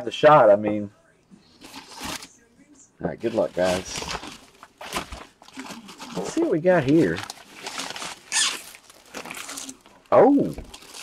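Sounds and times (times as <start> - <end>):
bag rustling: 3.2 - 11.0.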